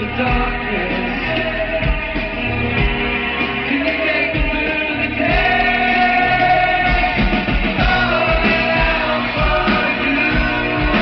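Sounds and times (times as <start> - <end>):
person singing: 0.0 - 2.4, 3.0 - 11.0
drums: 0.0 - 11.0
electric guitars: 0.0 - 11.0.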